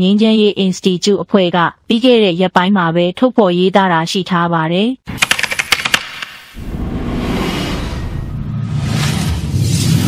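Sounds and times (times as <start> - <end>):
quick run of sharp clicks: 5.1 - 6.6
low rumble: 6.6 - 10.0.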